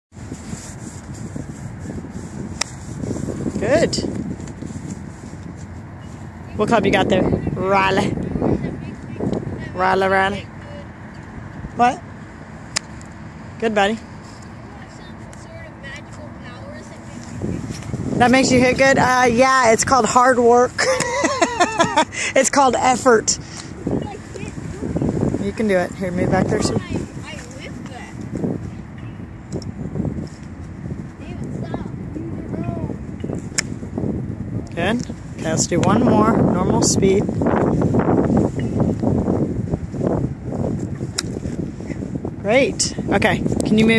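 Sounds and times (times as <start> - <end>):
outdoor background noise: 0.1 - 43.9
golf club striking ball: 33.2 - 33.8, 41.1 - 41.4.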